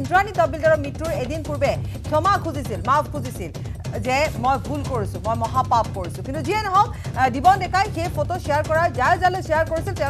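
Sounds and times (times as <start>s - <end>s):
background music with ticking: 0.0s - 10.0s.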